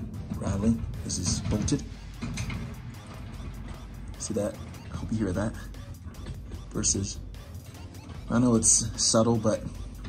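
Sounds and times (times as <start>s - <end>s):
metal roof basket rattling: 0.0s - 7.1s.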